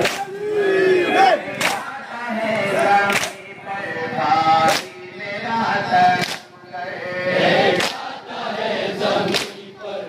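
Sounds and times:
men chanting a lament in unison: 0:00.0 - 0:10.0.

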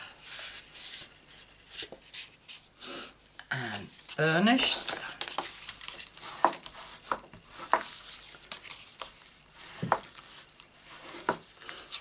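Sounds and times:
cardstock rustling and rubbing: 0:00.2 - 0:02.8, 0:03.8 - 0:12.0
paper tapping and scraping on mat: 0:04.7 - 0:12.0.

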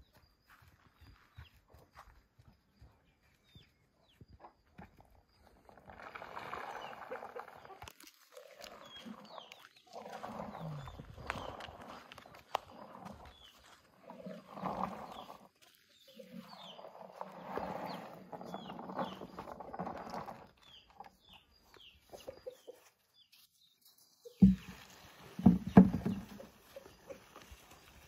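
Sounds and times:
birds chirping: 0:00.0 - 0:28.0
bucket thumping down: 0:24.4 - 0:26.6.

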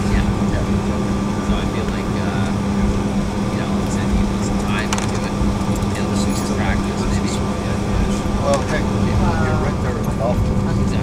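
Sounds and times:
faint passenger conversation: 0:00.0 - 0:11.0
jet cabin engine rumble: 0:00.0 - 0:11.0.

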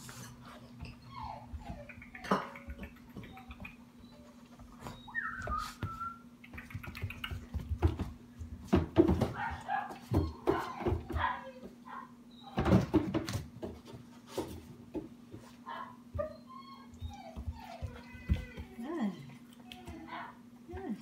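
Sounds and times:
puppy whining and yelping: 0:00.8 - 0:06.1, 0:16.1 - 0:18.2.

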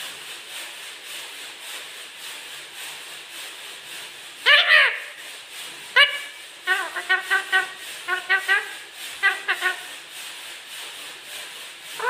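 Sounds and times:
parakeet calling: 0:04.4 - 0:05.2, 0:06.0 - 0:09.9.

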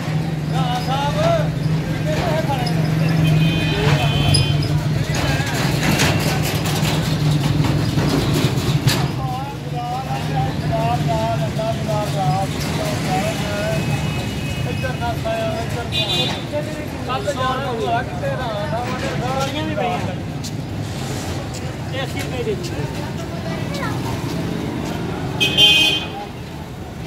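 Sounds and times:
road traffic hum: 0:00.0 - 0:27.0
people talking: 0:00.4 - 0:07.0, 0:08.9 - 0:20.5, 0:21.5 - 0:27.0.

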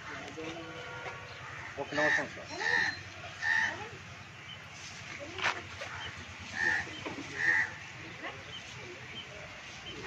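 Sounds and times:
birds calling: 0:00.0 - 0:10.0.

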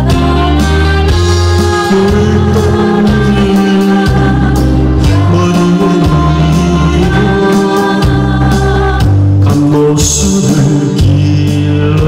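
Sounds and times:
backing track through loudspeakers: 0:00.0 - 0:12.0
man singing into microphone: 0:01.6 - 0:08.2, 0:09.4 - 0:12.0.

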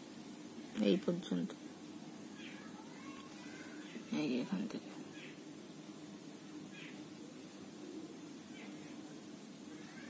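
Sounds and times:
faint low hum: 0:00.0 - 0:10.0
high animal cries: 0:09.7 - 0:10.0.

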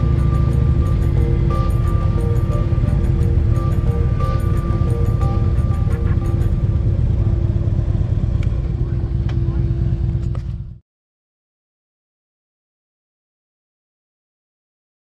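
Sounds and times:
music playing: 0:00.0 - 0:08.1
motorcycle engine rumble: 0:00.0 - 0:10.8.

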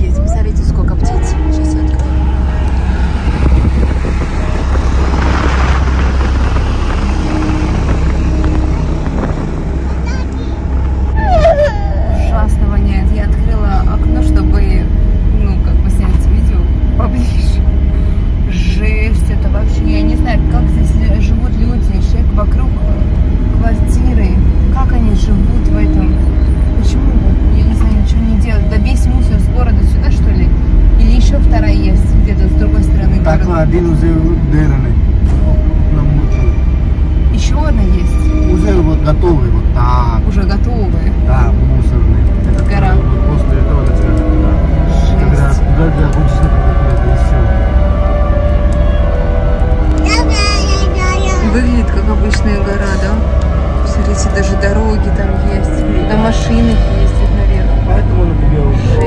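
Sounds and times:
car driving rumble inside cabin: 0:00.0 - 0:59.0
voices talking: 0:37.3 - 0:59.0.

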